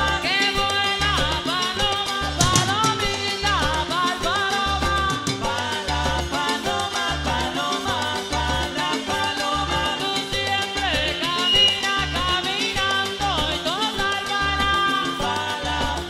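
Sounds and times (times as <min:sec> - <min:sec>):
live cumbia band playing: 0:00.0 - 0:16.0
repeating bass line: 0:00.0 - 0:16.0.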